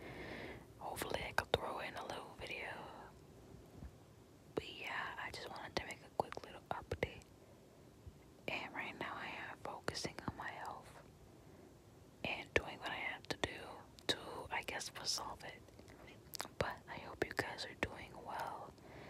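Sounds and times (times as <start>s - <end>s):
person whispering: 0.8s - 3.1s, 4.6s - 7.2s, 8.5s - 11.0s, 12.3s - 18.7s.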